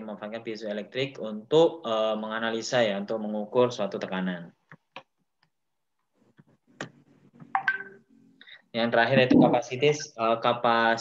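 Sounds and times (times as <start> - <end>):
electronic beep: 9.2 - 9.6.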